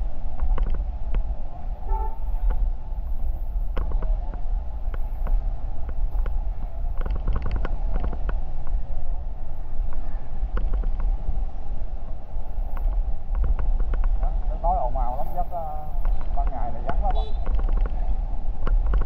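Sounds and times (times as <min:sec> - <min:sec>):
wind buffeting microphone: 0:00.0 - 0:19.0
horn toot: 0:01.8 - 0:02.4.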